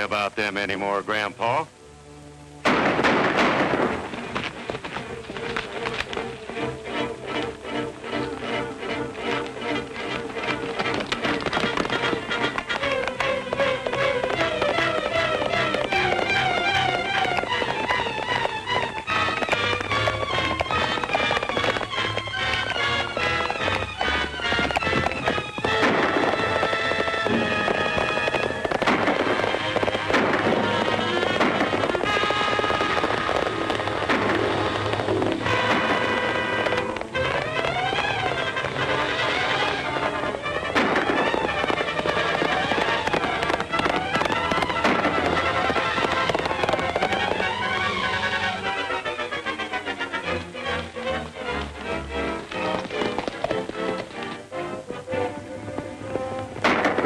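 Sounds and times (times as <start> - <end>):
galloping hooves clatter: 0.0 - 1.6, 2.6 - 57.0
orchestral chase music: 0.0 - 57.0.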